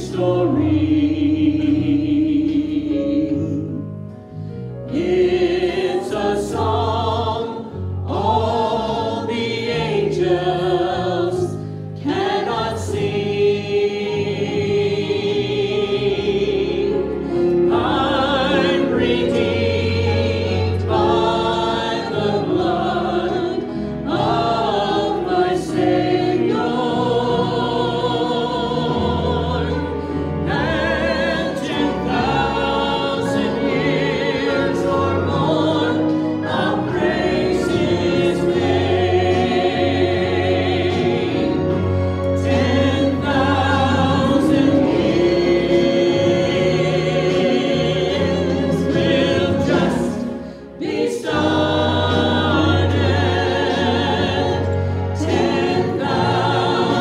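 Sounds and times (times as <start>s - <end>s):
choir singing a hymn: 0.0s - 57.0s
instrumental accompaniment: 0.1s - 57.0s.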